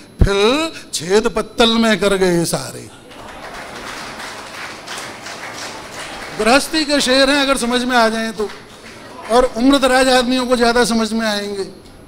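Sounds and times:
audience applauding: 0:03.0 - 0:10.1.

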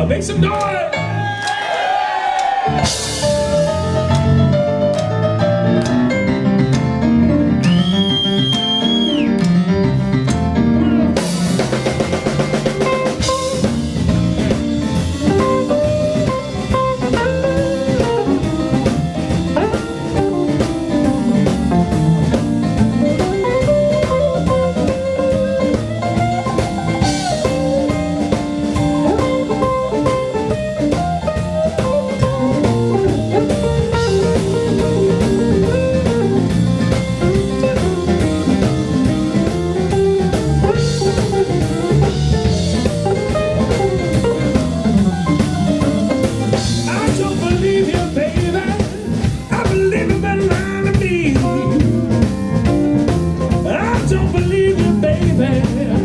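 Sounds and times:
bass guitar: 0:00.0 - 0:56.0
drum kit: 0:00.0 - 0:56.0
electric guitar: 0:02.5 - 0:56.0
electric keyboard: 0:02.6 - 0:56.0.

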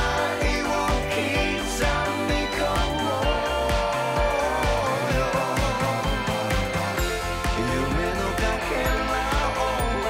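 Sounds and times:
pop song with drums and singing: 0:00.0 - 0:10.0.

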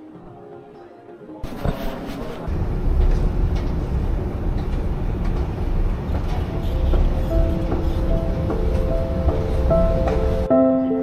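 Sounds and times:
background music with held notes: 0:00.0 - 0:01.5, 0:06.4 - 0:11.0
escalator rumbling: 0:02.5 - 0:10.5.

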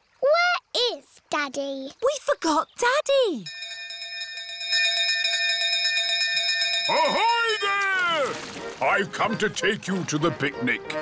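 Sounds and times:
brass bell ringing rapidly: 0:03.5 - 0:07.8.

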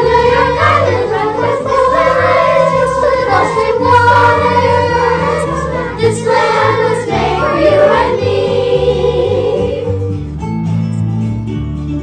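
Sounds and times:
children's choir singing: 0:00.0 - 0:10.0
instrumental accompaniment: 0:00.0 - 0:12.0.

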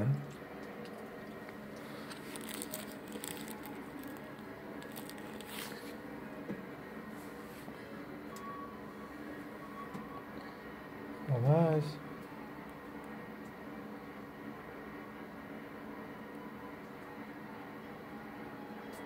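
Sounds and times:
treats crunching: 0:01.5 - 0:06.0.

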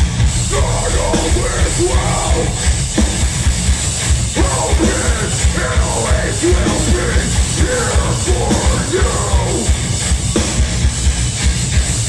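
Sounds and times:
distorted guitars: 0:00.0 - 0:12.0.

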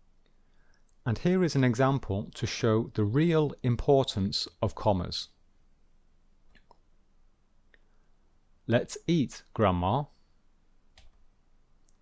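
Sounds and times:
computer mouse clicks: 0:11.0 - 0:11.2.

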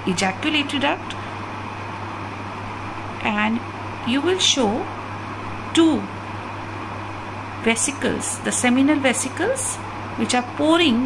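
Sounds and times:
steady background hum and hiss: 0:00.0 - 0:11.0.

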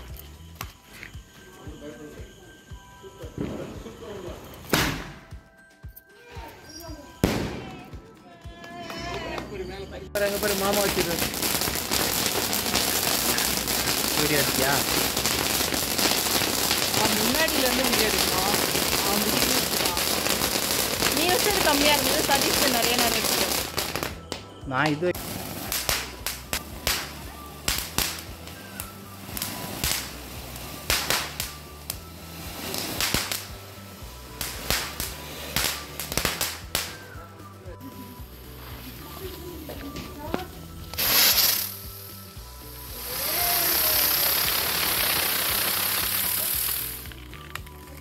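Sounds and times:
firework sparks crackling hiss: 0:00.0 - 0:05.4, 0:06.6 - 0:08.0, 0:10.2 - 0:48.0
voices: 0:16.8 - 0:24.0, 0:36.8 - 0:40.9.

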